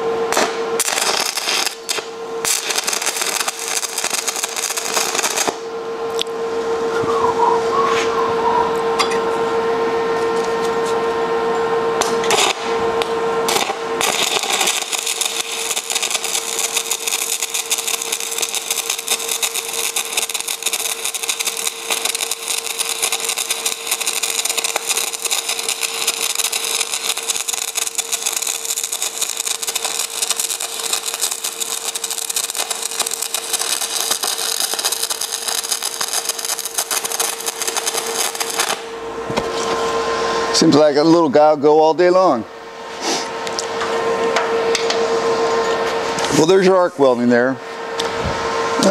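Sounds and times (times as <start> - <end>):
welding arc crackling: 0.0 - 5.7, 12.2 - 39.0.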